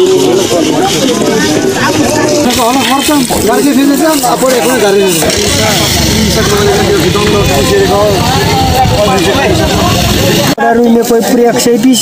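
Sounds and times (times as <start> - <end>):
men talking over one another: 0.0 - 12.0.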